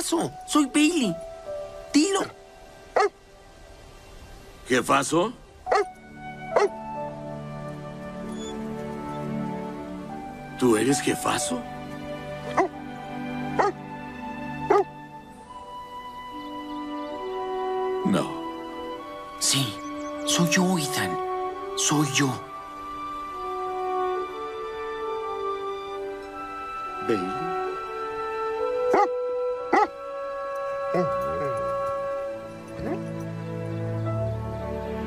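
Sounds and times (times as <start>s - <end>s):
soft background film music: 0.0s - 35.0s
dog barking: 3.0s - 3.2s, 5.7s - 5.9s, 6.6s - 6.8s, 12.5s - 12.7s, 13.6s - 13.8s, 14.7s - 14.9s, 28.9s - 30.0s, 30.9s - 31.5s, 32.8s - 33.1s.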